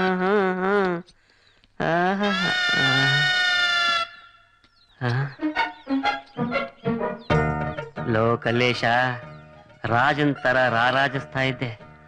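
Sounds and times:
man's drawn-out hawking cry: 0:01.8 - 0:04.4.

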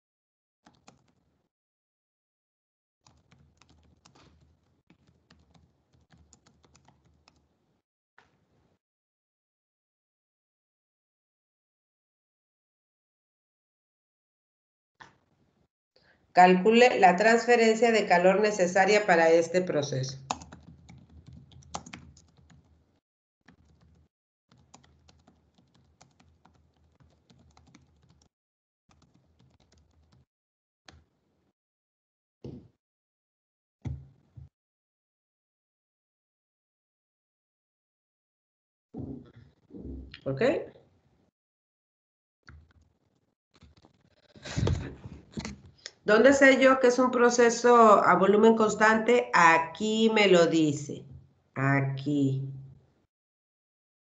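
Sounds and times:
typing on computer keyboard: 0:00.6 - 0:01.2, 0:03.0 - 0:07.5, 0:20.2 - 0:22.8, 0:23.4 - 0:28.3, 0:28.9 - 0:30.3.

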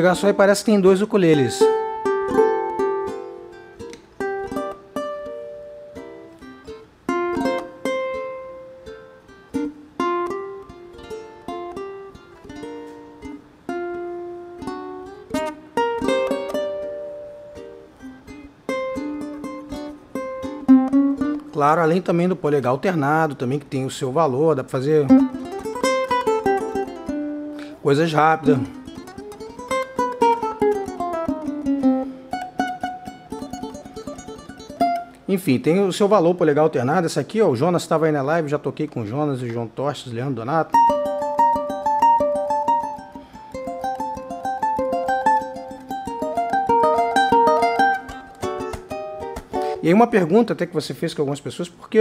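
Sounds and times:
ukulele plucked notes: 0:00.0 - 0:22.1, 0:24.8 - 0:35.3, 0:40.7 - 0:50.4.

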